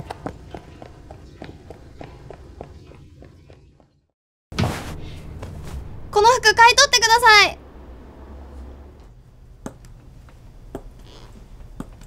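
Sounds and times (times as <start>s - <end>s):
quick footsteps on pavement: 0.0s - 4.1s.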